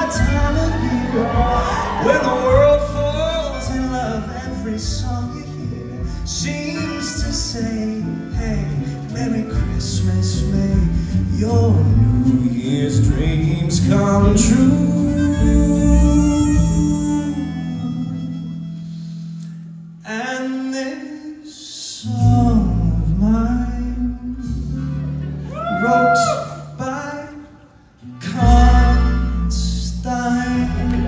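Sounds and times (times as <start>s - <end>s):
person singing: 0.0s - 18.9s, 20.0s - 31.0s
live band music: 0.0s - 21.1s, 22.0s - 31.0s.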